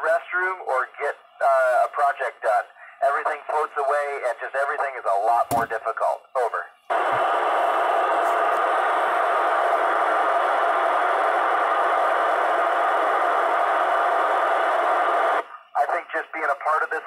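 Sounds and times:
radio receiver hiss: 6.9s - 17.0s.

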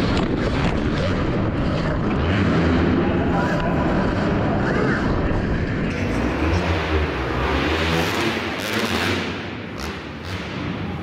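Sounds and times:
dirt bike drivetrain noise: 0.0s - 11.0s.

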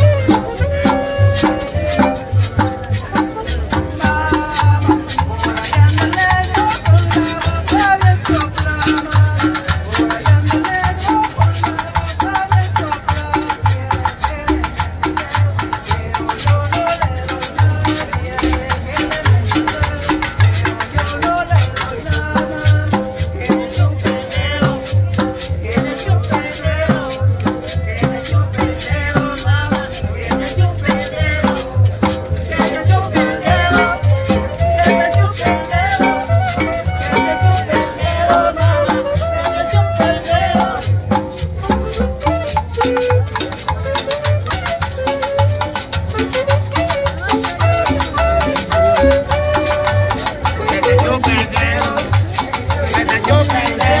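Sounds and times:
percussion: 0.0s - 54.0s
plucked upright bass: 0.0s - 54.0s
salsa band playing: 0.0s - 54.0s.

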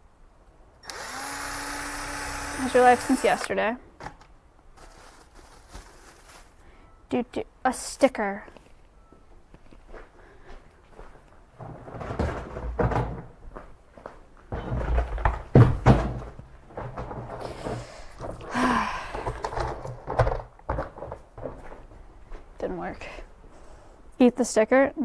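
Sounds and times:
rustling: 4.7s - 6.9s
footsteps: 8.5s - 22.7s
thuds and knocks of objects: 11.6s - 13.4s, 14.5s - 21.8s.

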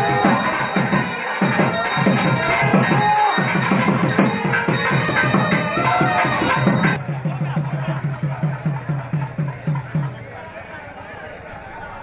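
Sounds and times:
low-pitched drum beating: 0.0s - 10.1s.

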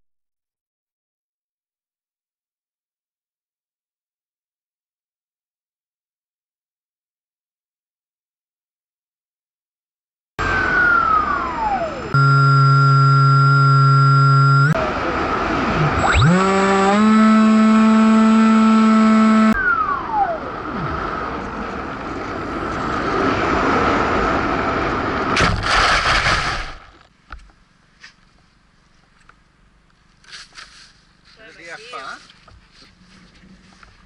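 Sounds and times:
electric motor whine: 10.4s - 23.3s
loud rough crash noise: 25.3s - 27.1s.

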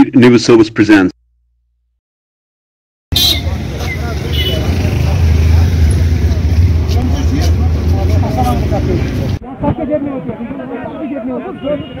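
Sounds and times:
people talking in a crowd: 3.1s - 12.0s.

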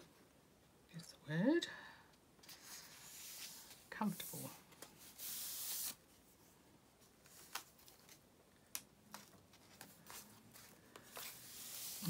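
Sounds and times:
palm sliding over paper: 2.5s - 6.0s, 9.6s - 12.0s
faint paper taps and crackles: 7.2s - 11.4s.

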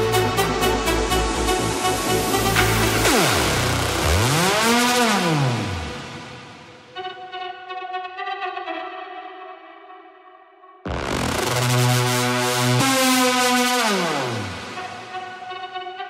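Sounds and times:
electronic dance music beat: 0.0s - 7.2s, 10.9s - 16.0s
pulsing sustained synth chord: 0.0s - 8.6s, 10.9s - 16.0s
synthesizer sweep gliding: 0.0s - 10.1s, 10.9s - 16.0s.

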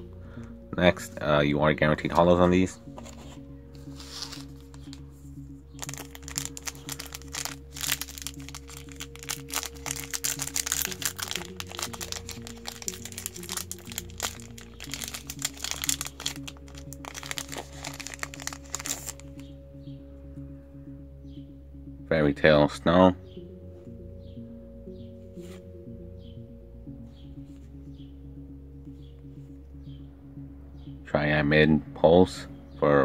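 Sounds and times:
background music: 0.0s - 33.0s
foil wrapper crinkling and tearing: 3.9s - 5.0s, 5.8s - 19.4s.

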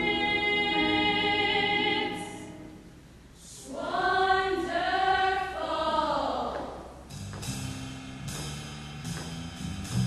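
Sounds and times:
choir singing unaccompanied: 0.0s - 2.8s, 3.4s - 6.8s.

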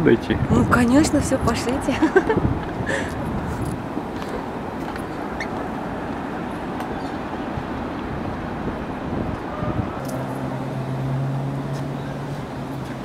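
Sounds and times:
outdoor background rumble: 0.0s - 13.0s.

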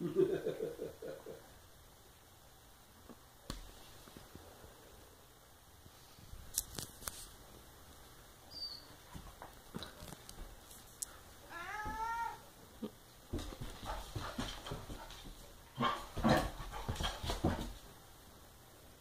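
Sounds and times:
scuffling and paw clicks on tile: 6.5s - 7.4s.

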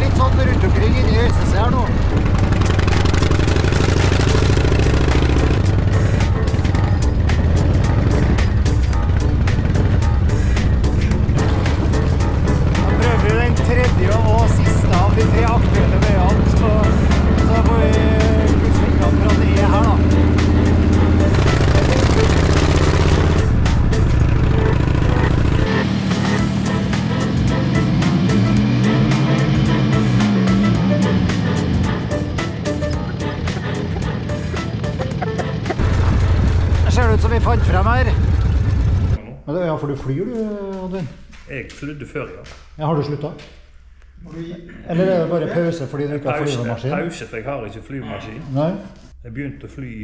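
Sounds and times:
background music: 0.0s - 38.3s, 45.0s - 50.0s
motorcycle engine running: 0.0s - 39.2s.

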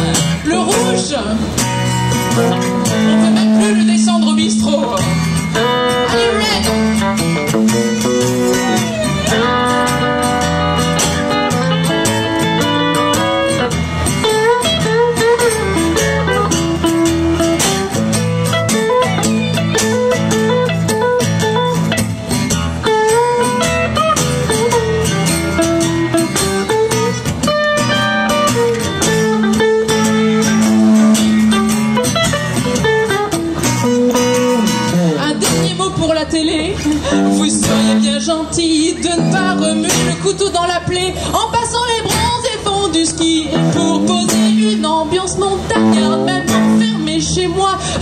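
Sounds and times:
electric guitar lead with bent notes: 0.0s - 48.0s
strummed acoustic guitar: 0.0s - 48.0s.

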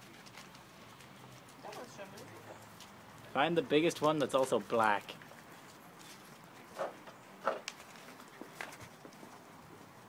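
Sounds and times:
puppy pawing on paving stones: 0.0s - 10.0s.

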